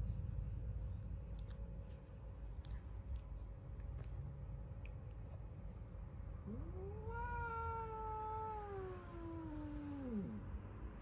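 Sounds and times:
cat yowling: 6.4s - 10.5s.

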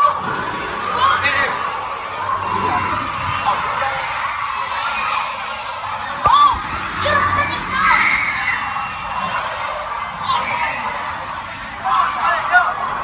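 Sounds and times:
children shouting and chattering: 0.0s - 13.0s.

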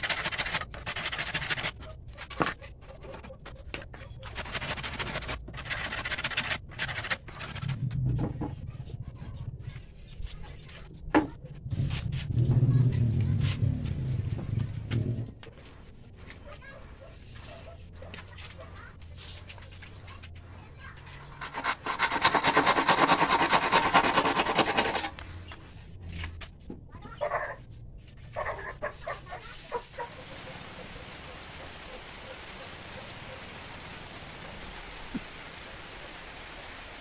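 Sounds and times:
handsaw cutting wood: 0.0s - 1.8s, 4.3s - 7.8s, 21.4s - 25.2s.

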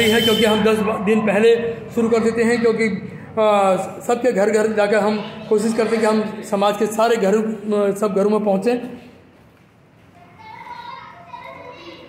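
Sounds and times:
children talking and calling: 0.0s - 7.6s, 10.0s - 12.0s.

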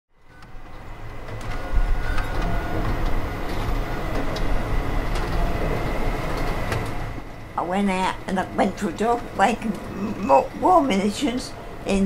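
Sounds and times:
machinery low rumble: 0.2s - 12.0s.

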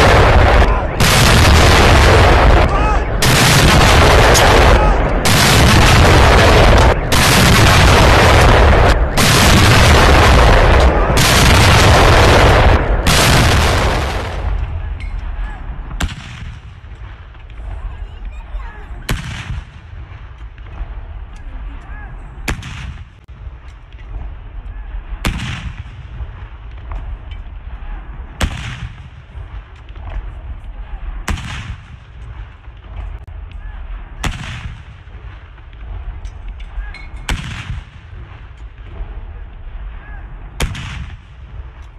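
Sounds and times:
field gun shots: 0.0s - 17.8s, 19.0s - 21.0s, 22.4s - 23.2s, 25.1s - 27.0s, 28.4s - 30.2s, 31.2s - 33.0s, 33.8s - 39.1s, 39.8s - 41.8s
rolling echo: 0.0s - 41.9s.

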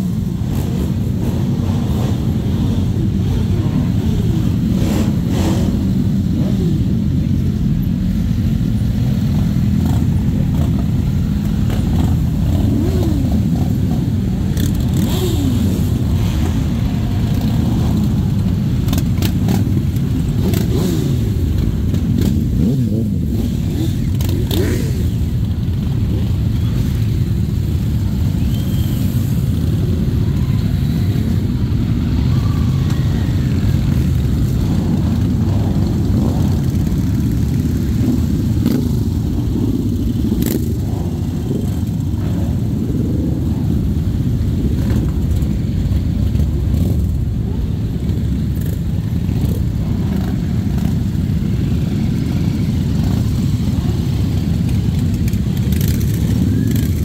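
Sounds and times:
motorcycle engines rumbling: 0.0s - 57.0s
motorcycles revving: 0.0s - 57.0s.

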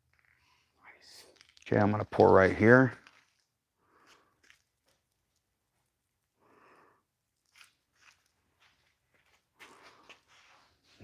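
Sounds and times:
soft rustle: 7.4s - 11.0s.

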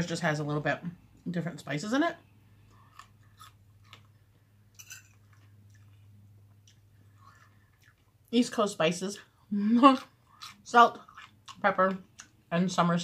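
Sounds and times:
low steady hum: 0.0s - 13.0s
quiet chewing: 2.6s - 8.3s, 9.9s - 12.4s.

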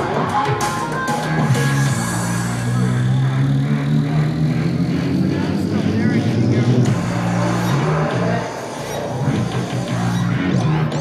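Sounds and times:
live electronic music: 0.0s - 11.0s
low bass line: 0.0s - 11.0s.

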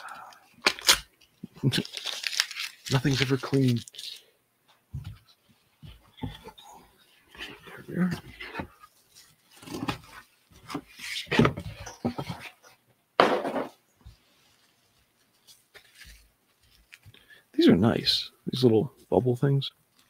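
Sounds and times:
bubble wrap rustling: 0.0s - 4.3s
cardboard tearing: 1.8s - 4.0s.

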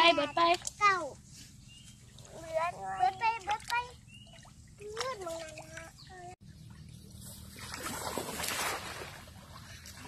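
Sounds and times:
water splashing from wading: 3.2s - 10.0s.

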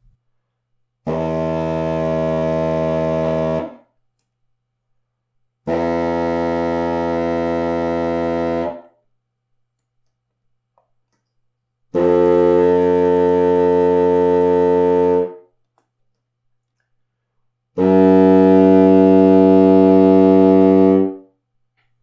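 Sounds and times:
contrabassoon low sustained notes: 1.1s - 3.8s, 5.7s - 8.9s, 12.0s - 15.4s, 17.8s - 21.2s.

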